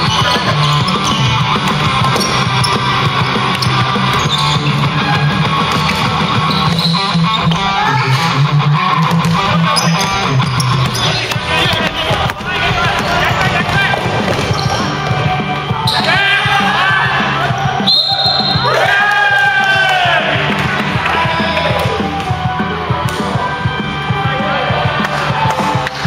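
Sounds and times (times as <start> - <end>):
background rock music: 0.0 - 26.0
players shouting: 0.0 - 26.0.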